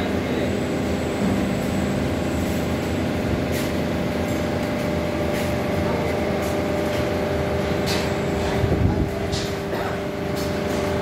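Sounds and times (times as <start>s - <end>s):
electric motor and pump humming: 0.0s - 11.0s.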